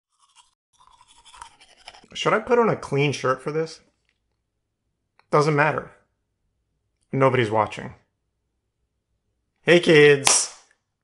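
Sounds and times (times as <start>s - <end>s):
toothbrush scrubbing teeth: 0.1s - 2.4s.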